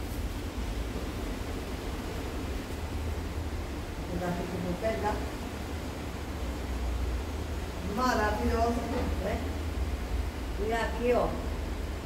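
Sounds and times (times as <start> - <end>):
low rumbling background noise: 0.0 - 12.0.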